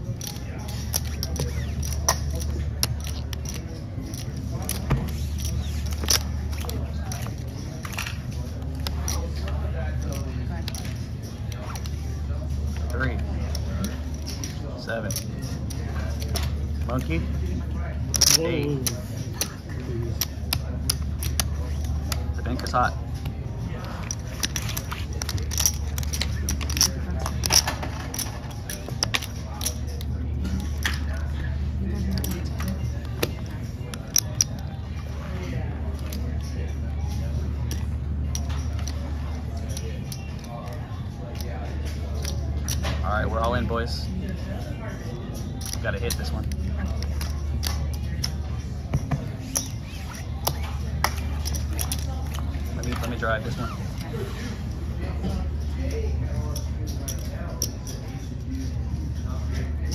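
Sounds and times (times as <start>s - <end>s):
chips and cards clicking: 0.0s - 17.3s, 18.0s - 54.2s
faint distant voices: 0.0s - 59.9s.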